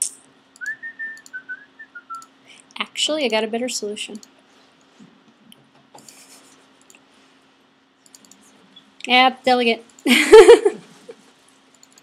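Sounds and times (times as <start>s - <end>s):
computer clicks: 0.6s - 1.4s, 4.1s - 4.4s, 8.0s - 8.5s, 11.7s - 12.0s
person whistling: 0.6s - 2.2s.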